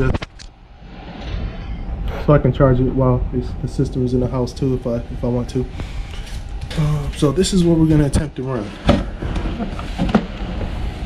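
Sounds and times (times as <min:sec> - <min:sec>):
low handling rumble: 0:00.0 - 0:11.0.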